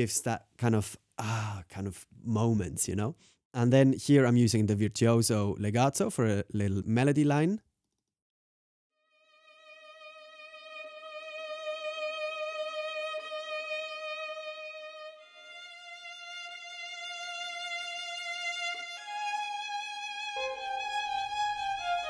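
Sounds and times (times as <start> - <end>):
solo violin melody with vibrato: 9.0 - 22.0.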